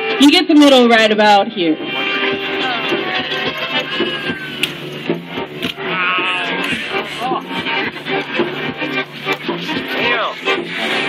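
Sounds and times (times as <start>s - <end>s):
violin: 1.2s - 11.0s.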